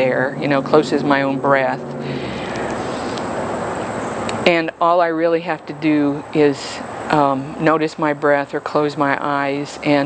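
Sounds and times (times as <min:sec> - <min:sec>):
steady rushing hiss: 0:00.8 - 0:04.6.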